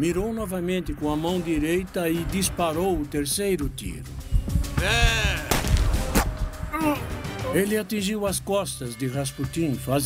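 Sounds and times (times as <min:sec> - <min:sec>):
background music: 0:00.0 - 0:10.0
pistol gunshots: 0:05.5 - 0:06.4.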